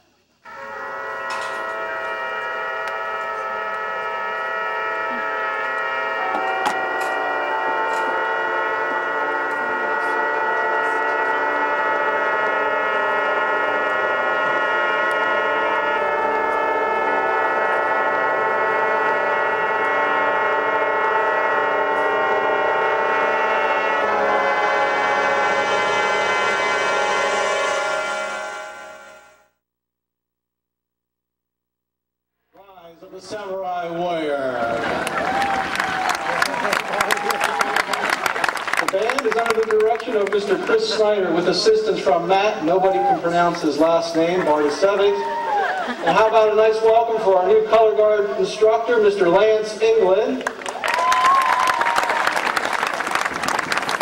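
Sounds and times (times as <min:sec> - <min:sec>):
brass band playing sustained chords: 0:00.2 - 0:29.5, 0:32.6 - 0:54.0.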